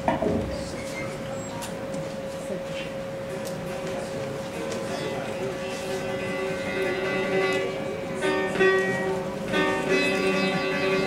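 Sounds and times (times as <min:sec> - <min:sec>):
steady hum: 0:00.0 - 0:11.0
lute plucked notes: 0:06.0 - 0:11.0.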